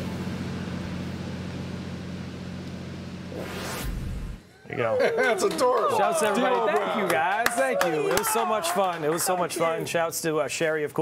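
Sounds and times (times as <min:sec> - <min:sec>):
low hum: 0:00.0 - 0:05.2
rising whoosh: 0:03.3 - 0:04.4.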